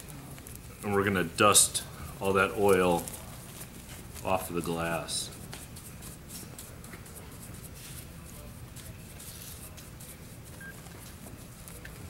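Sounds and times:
steady low hum: 0.0 - 12.0
brush sweeping window glass: 5.8 - 10.7.

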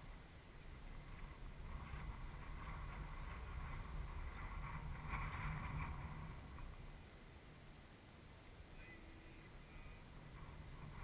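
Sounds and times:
faint hiss: 0.0 - 11.0
wind rumbling on microphone: 0.0 - 11.0.

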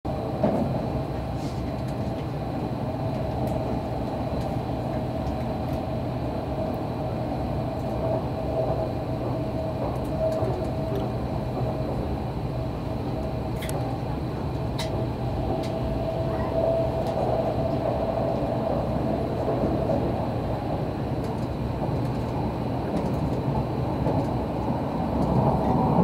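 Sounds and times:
steady humming tone: 0.1 - 26.0
train wheels rumbling on rail: 0.1 - 26.0.

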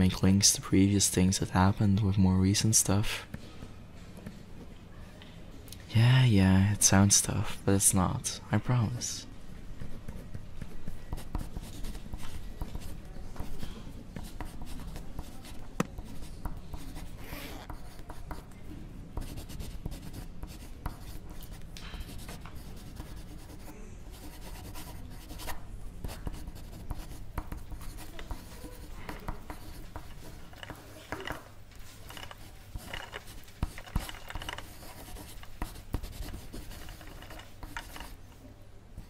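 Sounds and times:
pencil writing on paper: 9.7 - 18.6, 19.2 - 38.2.

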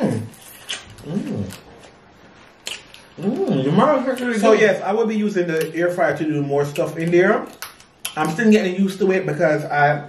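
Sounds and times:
person humming mmm while eating: 1.0 - 1.7.

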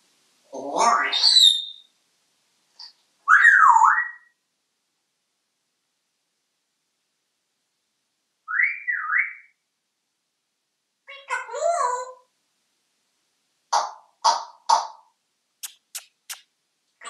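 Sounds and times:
parrot harsh calls: 0.6 - 1.8
sharp clicks: 15.6 - 16.5.

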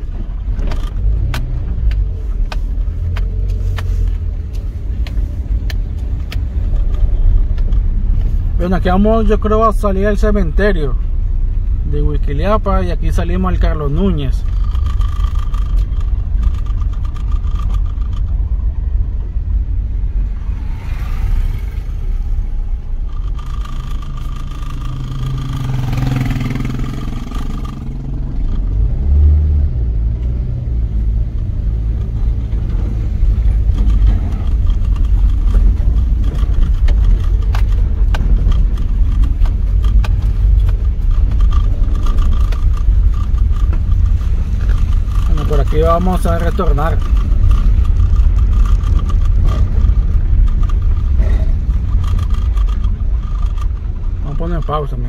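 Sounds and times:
car knocks and rattles: 0.0 - 21.6, 22.2 - 55.0
car engine and tyre rumble: 0.0 - 55.0.

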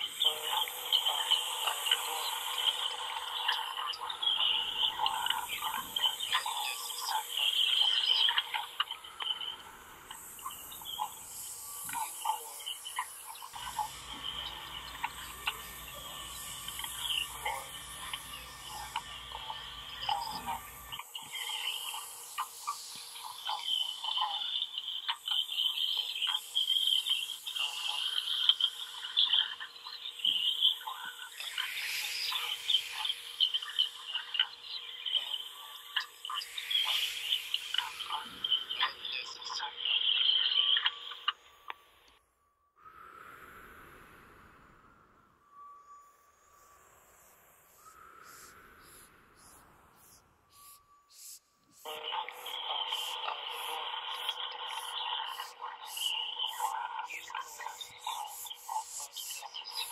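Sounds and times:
low drone: 9.1 - 22.0.

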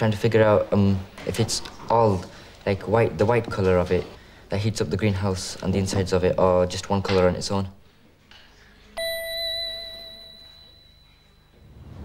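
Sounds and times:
bell-like chime ringing: 9.0 - 12.0.

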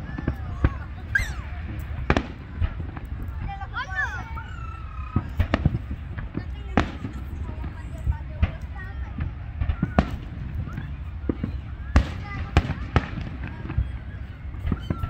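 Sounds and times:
fireworks bursting: 0.0 - 15.0.

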